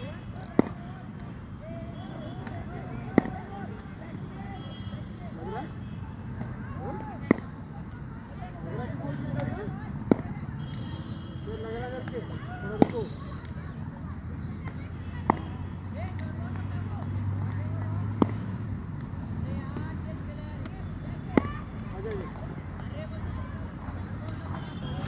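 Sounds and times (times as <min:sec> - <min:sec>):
cricket bat striking ball: 0:00.4 - 0:01.4, 0:02.2 - 0:03.8, 0:06.3 - 0:07.6, 0:09.4 - 0:10.8, 0:11.9 - 0:13.1, 0:14.6 - 0:16.7, 0:19.6 - 0:22.4.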